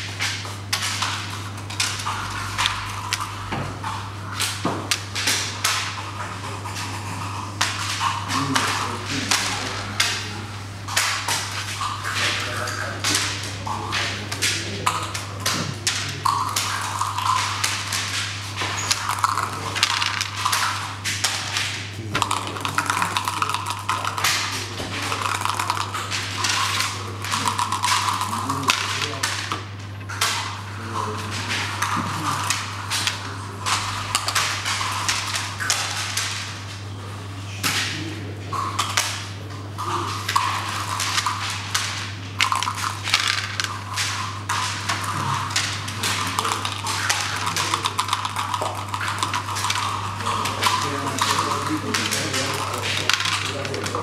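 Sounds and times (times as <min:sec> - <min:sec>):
checkers clacking on wooden board: 0:18.7 - 0:20.8, 0:40.3 - 0:54.0
dice rattling: 0:18.8 - 0:20.8, 0:22.2 - 0:29.6, 0:40.3 - 0:54.0.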